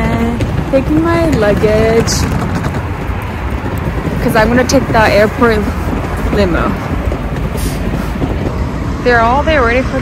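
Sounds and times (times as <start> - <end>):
street traffic rumble: 0.0 - 10.0
wind on microphone: 0.0 - 10.0.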